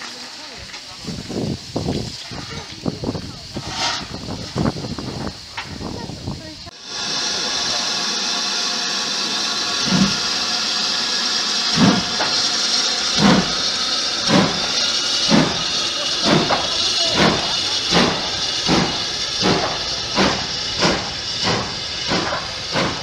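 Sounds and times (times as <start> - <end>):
steam hiss: 0.0 - 23.0
steam locomotive exhaust beats: 0.0 - 23.0.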